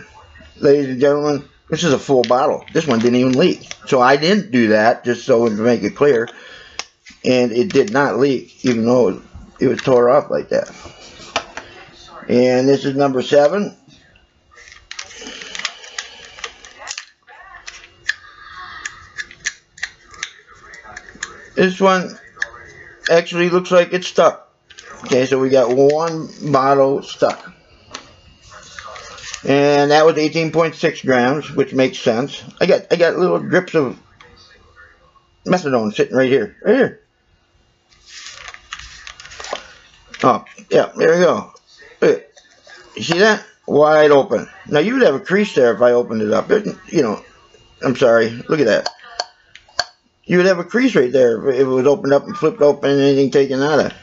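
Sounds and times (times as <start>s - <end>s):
plastic cap clicking and scraping: 18.8s - 21.3s.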